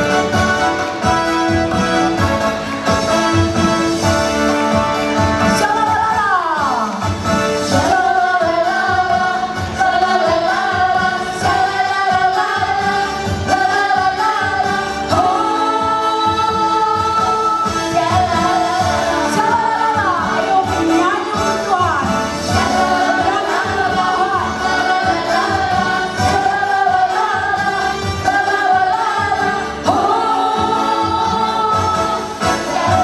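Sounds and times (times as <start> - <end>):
amplified backing music: 0.0 - 33.0
women singing worship song: 5.5 - 7.0, 7.6 - 33.0.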